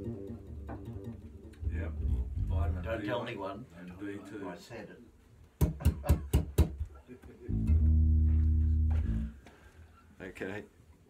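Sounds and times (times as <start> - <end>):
electric bass low note: 0.0 - 3.0, 7.5 - 9.4.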